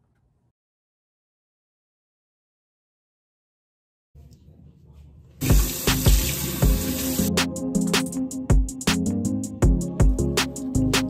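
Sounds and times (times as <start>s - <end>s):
water running from sink tap: 5.4s - 7.3s
background music with steady beat: 5.4s - 11.0s.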